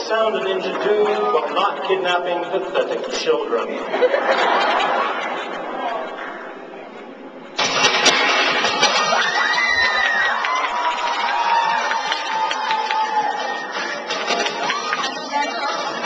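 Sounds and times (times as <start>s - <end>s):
noisy recorded audio track: 0.0s - 16.0s.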